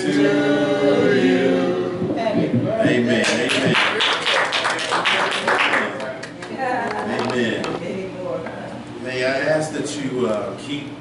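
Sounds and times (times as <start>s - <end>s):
congregation clapping: 3.2s - 6.5s.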